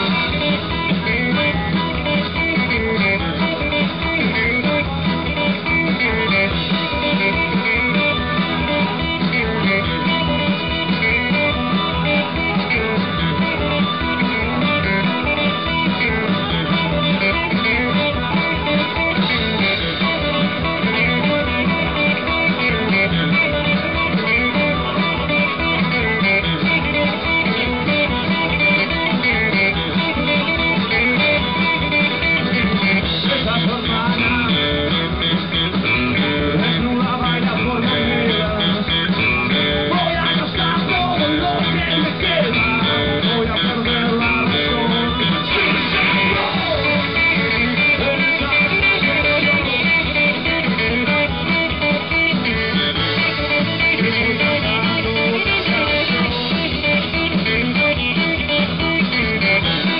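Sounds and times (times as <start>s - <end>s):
live rock band playing: 0.0s - 59.9s.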